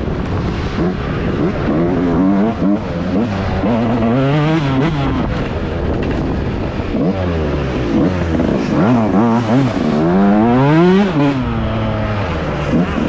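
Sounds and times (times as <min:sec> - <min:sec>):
motocross engine revving: 0:00.7 - 0:05.6, 0:06.8 - 0:13.0.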